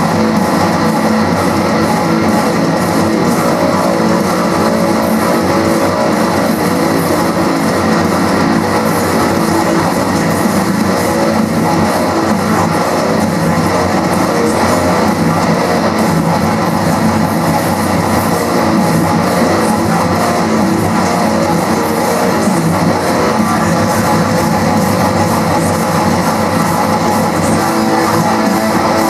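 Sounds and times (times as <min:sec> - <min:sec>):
distorted electric guitar riffing: 0:00.0 - 0:29.0.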